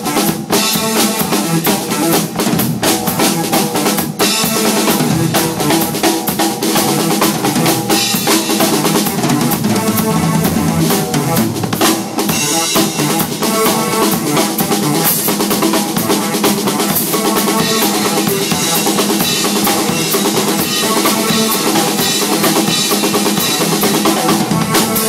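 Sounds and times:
drum kit playing: 0:00.0 - 0:25.0.

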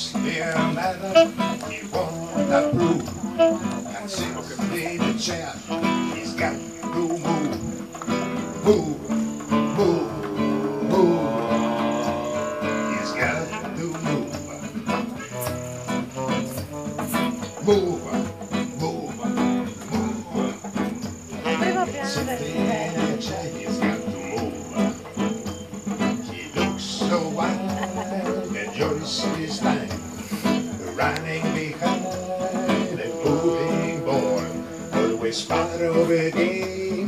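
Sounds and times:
acoustic guitar: 0:00.0 - 0:37.0
high insect trill: 0:00.0 - 0:37.0
tenor saxophone melody: 0:01.0 - 0:04.2, 0:08.4 - 0:17.6, 0:21.4 - 0:22.4
harmonica melody: 0:01.1 - 0:04.1, 0:08.2 - 0:17.6
djembe drumming: 0:01.3 - 0:37.0.

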